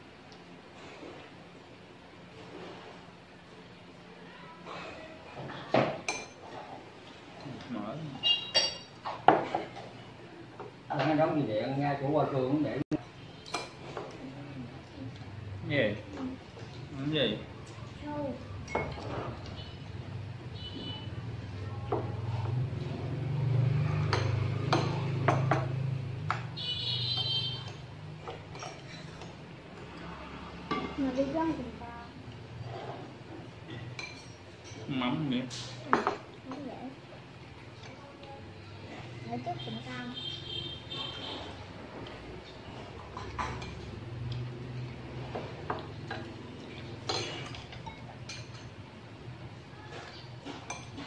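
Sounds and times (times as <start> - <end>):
utensils clinking against bowls: 5.5 - 10.0, 13.0 - 14.2, 18.6 - 19.9, 24.0 - 31.6, 32.3 - 36.7, 40.9 - 48.9, 49.9 - 51.0.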